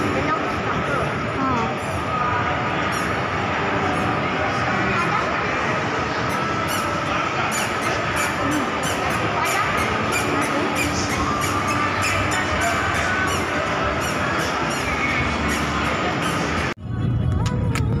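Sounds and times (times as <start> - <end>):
echoing crowd noise: 0.0 - 18.0
music playing: 5.8 - 18.0.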